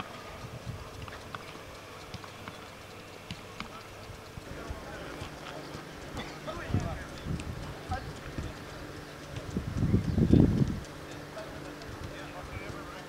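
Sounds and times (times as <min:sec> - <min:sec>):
players calling out: 0:00.0 - 0:09.6.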